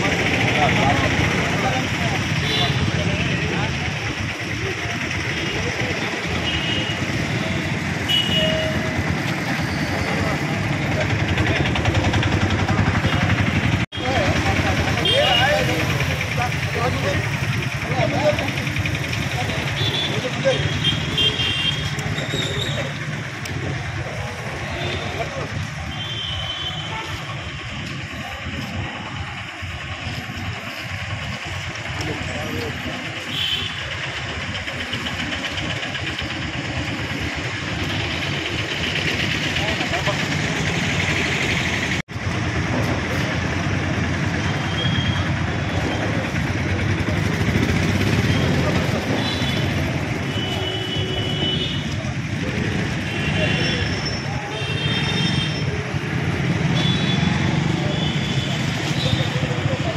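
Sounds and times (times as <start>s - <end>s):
people talking: 0.0s - 59.9s
traffic passing: 0.0s - 59.9s.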